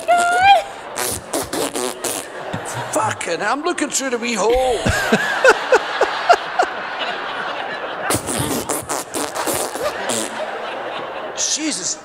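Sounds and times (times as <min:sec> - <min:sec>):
man and woman laughing: 0:04.5 - 0:11.4.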